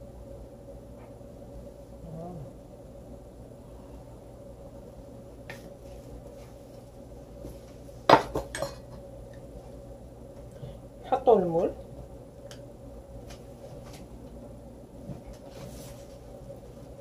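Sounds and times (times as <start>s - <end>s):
faint steady hum: 0.0s - 17.0s.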